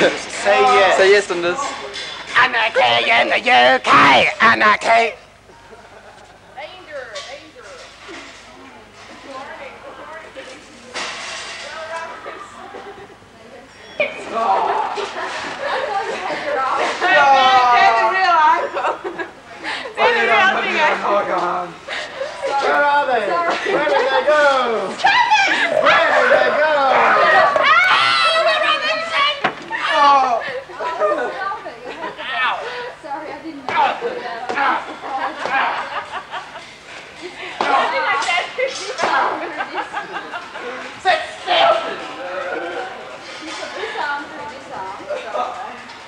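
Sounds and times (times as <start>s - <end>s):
people chattering: 0.0s - 46.0s
people talking in background: 0.0s - 46.0s.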